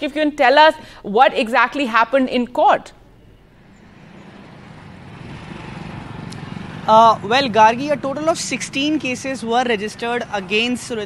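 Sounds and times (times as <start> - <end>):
vehicle engine and tyre noise: 3.1 - 11.0.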